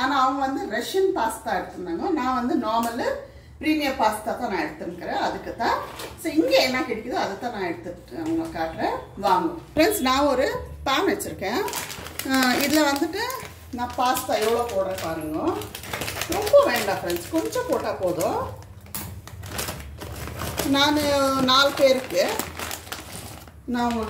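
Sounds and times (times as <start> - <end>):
woman talking: 0.0 - 18.6, 20.6 - 22.6, 23.6 - 24.0
scissors snipping plastic packet: 11.7 - 24.0.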